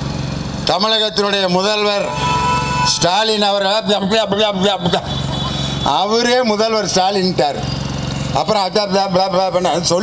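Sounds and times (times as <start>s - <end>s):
man speaking over loudspeaker: 0.6s - 5.2s, 5.8s - 7.7s, 8.4s - 10.0s.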